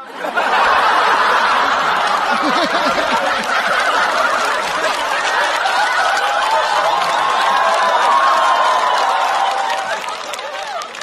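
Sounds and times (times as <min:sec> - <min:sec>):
studio audience laughing loudly: 0:00.0 - 0:11.0
scattered clapping: 0:01.4 - 0:11.0.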